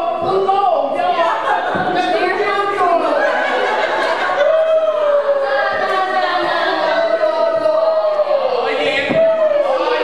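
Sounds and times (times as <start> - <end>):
voices singing in unison: 3.2 - 10.0.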